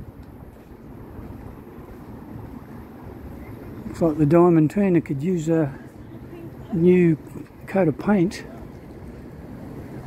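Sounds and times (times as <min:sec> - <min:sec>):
faint outdoor background noise: 0:00.0 - 0:10.0
wind on microphone: 0:00.0 - 0:10.0.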